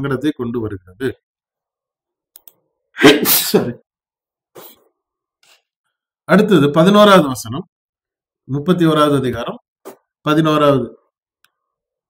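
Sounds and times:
man speaking: 0.0s - 1.2s, 3.0s - 3.8s, 6.3s - 7.7s, 8.5s - 9.6s, 10.2s - 11.1s.

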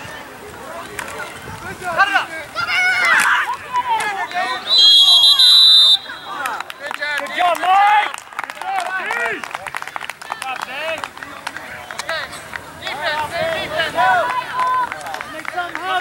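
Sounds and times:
crowd and players shouting: 0.0s - 16.0s
referee's whistle blast: 4.2s - 6.6s.

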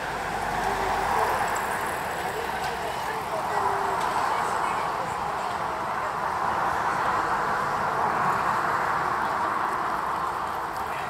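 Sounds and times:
passers-by talking: 0.0s - 11.0s
road traffic: 0.0s - 11.0s.

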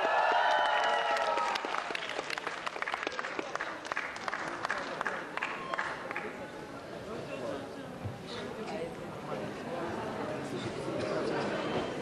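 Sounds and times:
audience applause: 0.0s - 6.3s.

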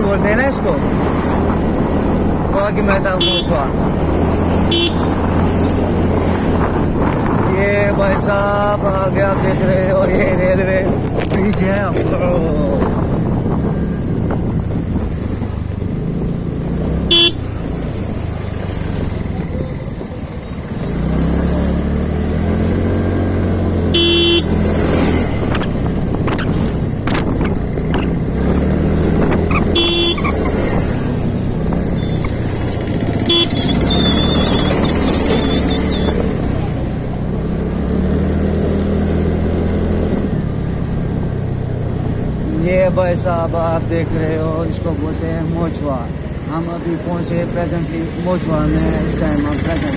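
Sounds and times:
vehicle horn toots: 3.2s - 3.6s, 4.7s - 5.2s, 17.1s - 17.5s, 23.9s - 24.6s, 29.7s - 30.4s, 33.2s - 34.7s
motor scooter engine running: 31.5s - 34.7s.

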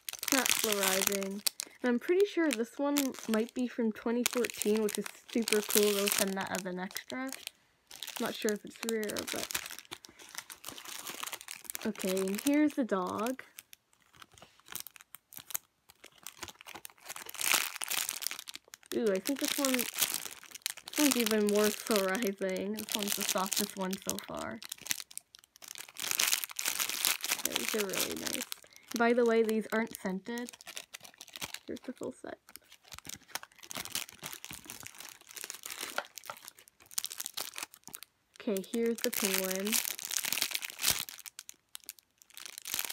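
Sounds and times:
plastic bag crinkling: 0.0s - 42.9s.

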